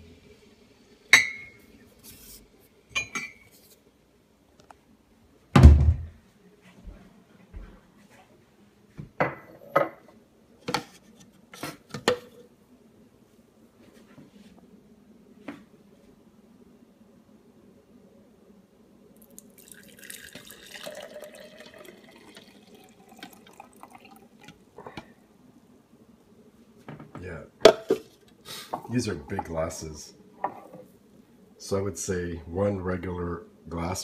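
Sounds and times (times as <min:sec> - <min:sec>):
heavy thump: 0:05.6 - 0:06.1.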